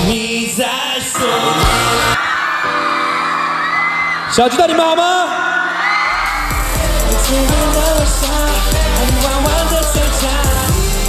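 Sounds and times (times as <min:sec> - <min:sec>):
loud band music: 0:01.1 - 0:02.3, 0:06.2 - 0:11.0
crowd cheering and whooping: 0:01.4 - 0:07.9.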